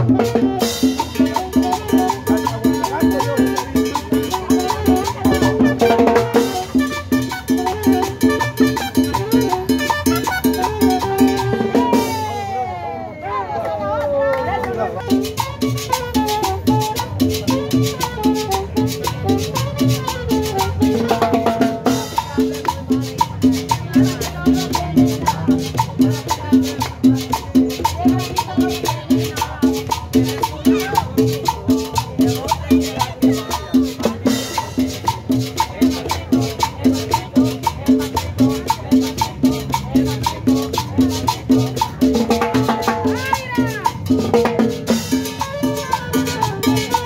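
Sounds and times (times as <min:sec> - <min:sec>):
latin dance music street band: 0:00.0 - 0:47.0.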